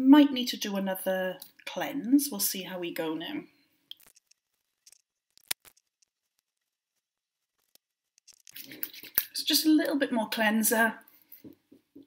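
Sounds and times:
hands rubbing together: 8.2s - 9.3s.

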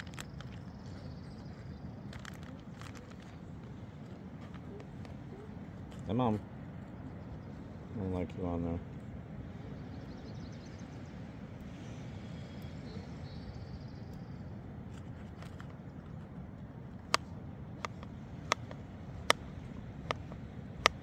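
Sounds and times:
low outdoor rush: 0.0s - 21.0s.

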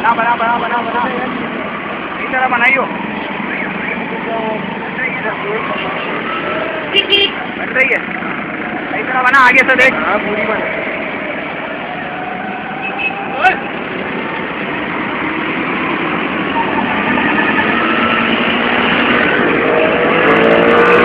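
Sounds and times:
people's voices: 0.0s - 15.0s
vehicle engines running: 0.0s - 21.0s.

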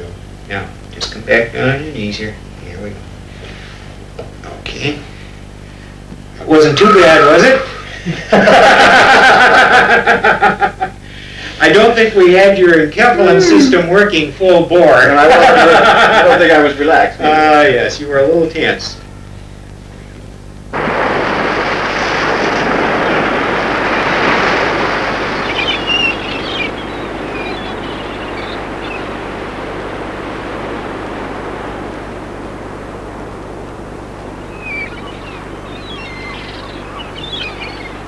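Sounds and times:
small waves washing onto shore: 20.7s - 38.0s
birds chirping: 21.6s - 38.0s.

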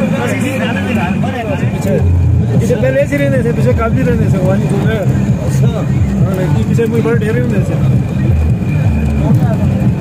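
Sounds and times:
jeep engine running: 0.0s - 10.0s
people's voices: 0.0s - 10.0s.

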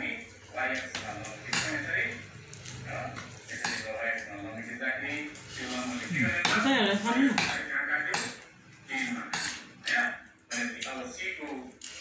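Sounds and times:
voices talking: 0.0s - 11.6s.

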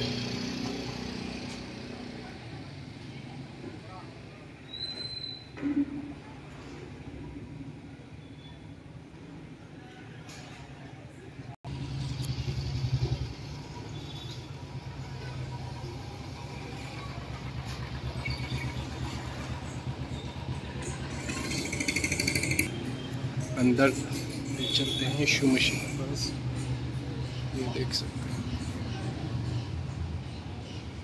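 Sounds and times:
engine running: 14.6s - 22.8s.

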